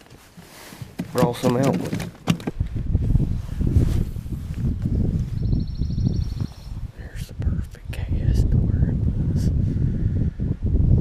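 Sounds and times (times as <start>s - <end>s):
handling clicks and knocks: 0.8s - 2.7s
wind buffeting microphone: 0.8s - 11.0s.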